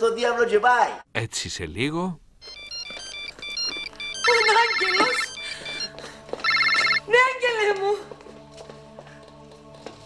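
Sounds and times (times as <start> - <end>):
mobile phone ringtone beeps: 2.4 - 7.0.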